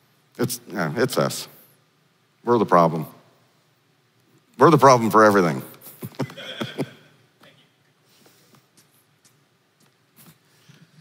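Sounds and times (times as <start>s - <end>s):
person laughing: 5.9s - 7.1s.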